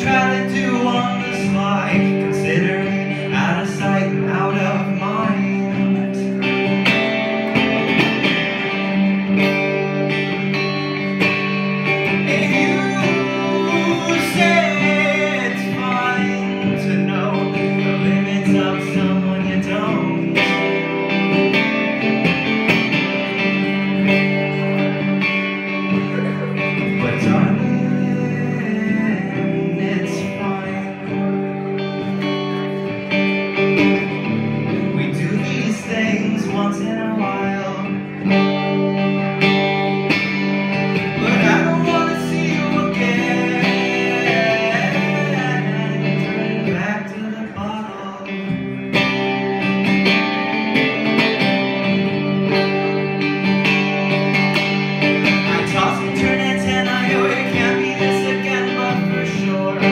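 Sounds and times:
man singing: 0.0s - 10.0s, 10.8s - 21.6s, 23.4s - 32.6s, 33.4s - 39.8s, 40.7s - 49.6s, 55.2s - 59.9s
electric guitar strumming: 0.0s - 59.9s.

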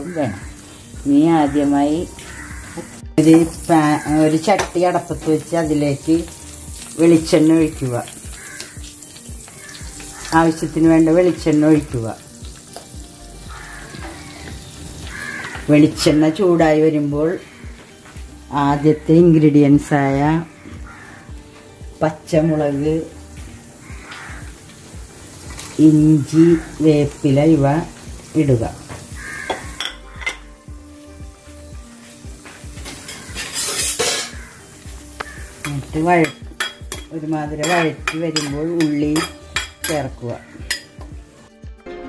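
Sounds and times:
water sizzling in hot pot: 0.0s - 41.6s
utensil clinking and scraping: 33.1s - 34.4s.

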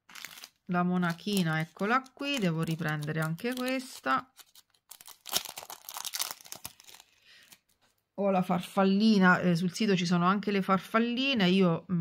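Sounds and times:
crinkly packaging rustling: 0.0s - 8.1s.

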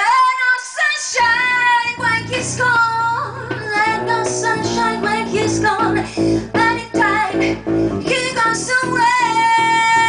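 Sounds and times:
woman singing: 0.0s - 10.0s
guitar accompaniment: 1.2s - 10.0s.

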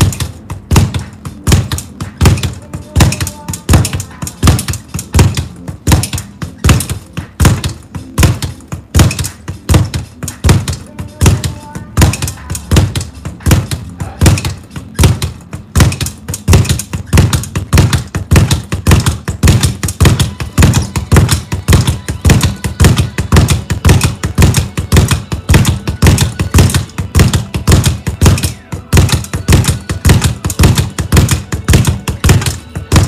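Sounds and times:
speed bag knocking on rebound board: 0.0s - 33.0s.

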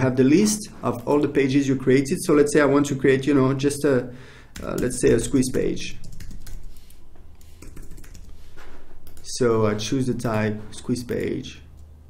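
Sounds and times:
typing on computer keyboard: 4.5s - 8.4s, 9.0s - 9.4s.

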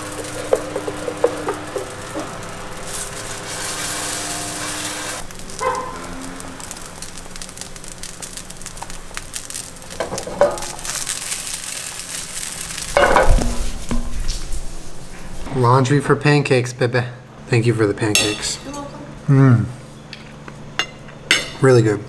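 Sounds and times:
pancakes sizzling in a frying pan: 0.0s - 14.0s.

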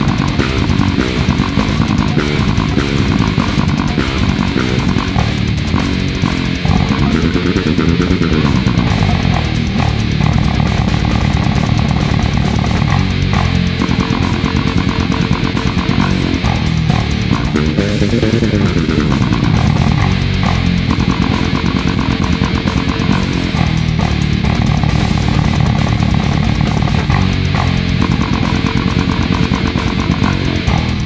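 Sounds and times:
distorted guitars: 0.0s - 31.0s
fretless bass riff: 0.0s - 31.0s
heavy metal band: 0.0s - 31.0s.

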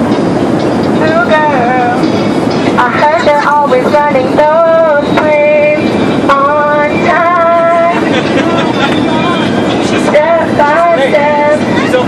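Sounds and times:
airliner cabin engine hum: 0.0s - 12.0s.

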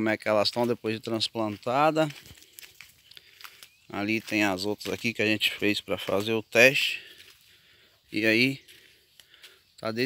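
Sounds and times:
grass leaves rustling against phone: 0.0s - 7.5s.

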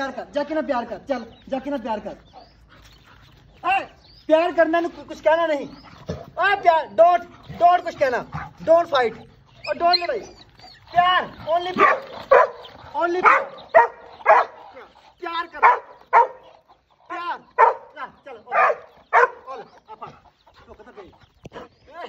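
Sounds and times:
dog yipping and barking: 11.8s - 14.6s, 15.6s - 16.5s, 17.6s - 17.9s, 18.5s - 19.4s.

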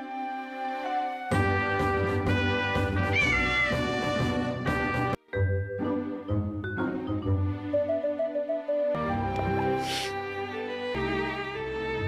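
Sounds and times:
background music: 0.0s - 12.0s
cartoon kitten meow: 3.1s - 3.9s.

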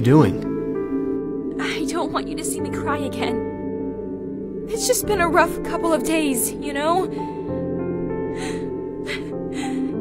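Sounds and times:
slow background music: 0.0s - 10.0s
woman's shaky crying breaths: 8.3s - 10.0s.

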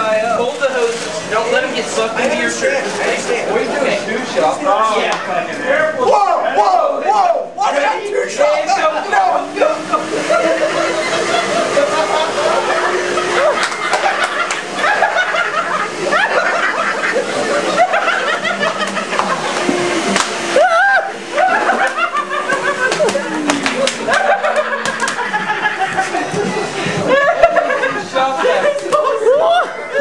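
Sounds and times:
men talking and shouting: 0.0s - 30.0s
shop vacuum humming: 0.0s - 30.0s
men laughing: 8.5s - 30.0s.

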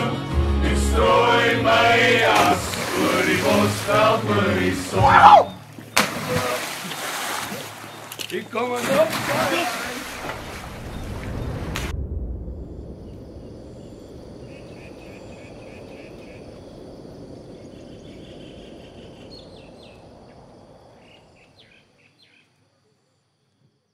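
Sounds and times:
steady outdoor hiss: 0.0s - 23.6s
insects chirping: 1.1s - 23.9s
pool water splashing: 1.8s - 11.9s
birds chirping: 2.7s - 11.6s.

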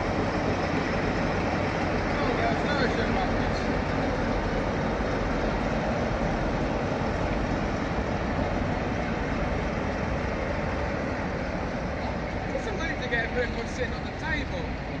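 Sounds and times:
passing train rumbling: 0.0s - 15.0s.

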